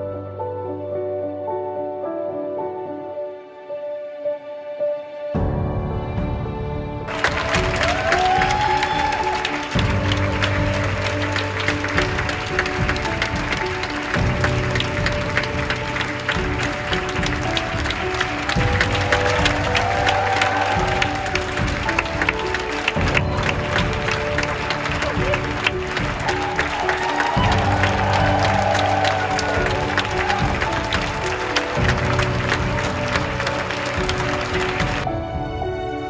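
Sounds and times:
music playing: 0.0 - 36.0
audience clapping: 7.1 - 35.1.

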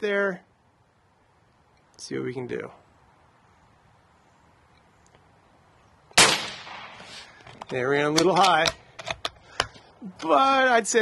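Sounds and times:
air rifle shot: 6.2 - 7.4.

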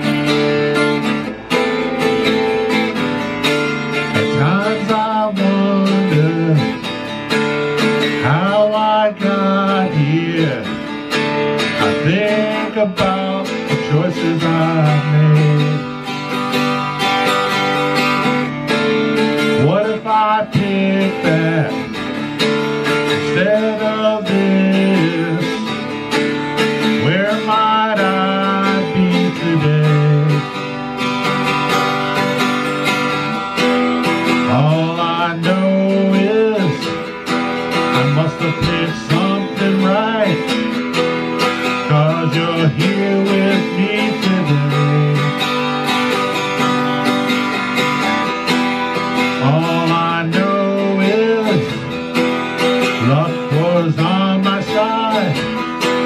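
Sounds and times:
twelve-string guitar strummed: 0.0 - 56.0.

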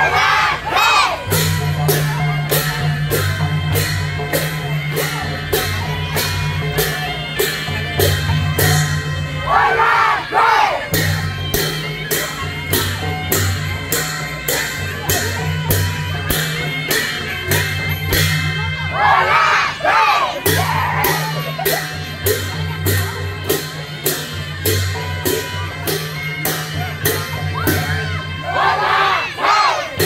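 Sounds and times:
crowd shouting: 0.0 - 1.4, 9.4 - 11.0, 18.9 - 21.6, 27.6 - 30.0
cymbals clashing: 0.0 - 30.0.

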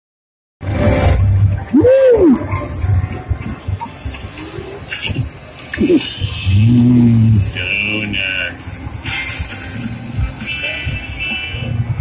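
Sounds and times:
electronic music: 0.6 - 12.0.

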